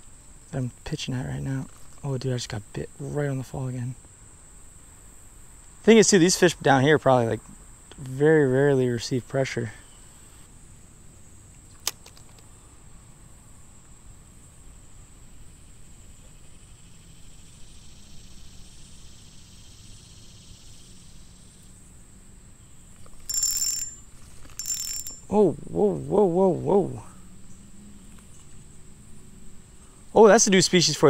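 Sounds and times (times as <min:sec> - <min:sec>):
sharp click: 0:11.7 - 0:12.5
reel drag buzzing: 0:23.0 - 0:25.4
spinning reel cranking: 0:23.1 - 0:25.3.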